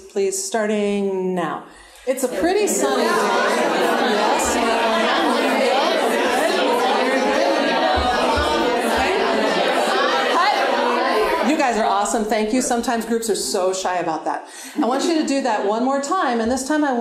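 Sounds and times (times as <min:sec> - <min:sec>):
babble of overlapping conversation: 0:02.1 - 0:13.8, 0:14.7 - 0:16.8.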